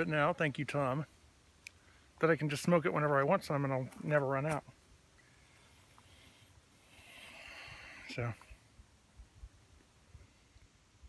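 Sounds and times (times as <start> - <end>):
man breathing softly: 5.2 - 8.7.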